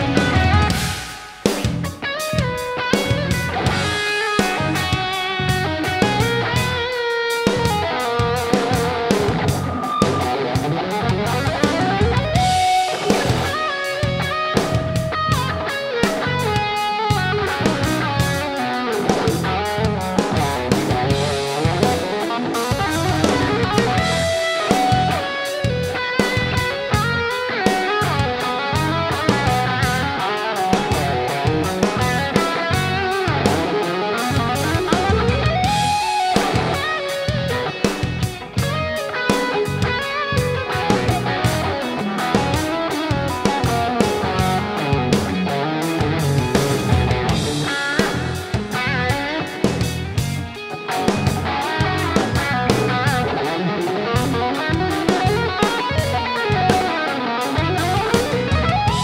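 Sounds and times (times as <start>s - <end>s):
bass guitar: 0.0s - 59.0s
drum kit: 0.0s - 59.0s
electric guitars playing runs: 0.0s - 59.0s.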